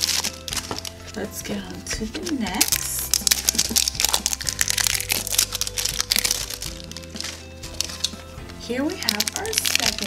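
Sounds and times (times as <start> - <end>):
background music: 0.0 - 10.0
plastic wrapping crinkling: 0.0 - 10.0.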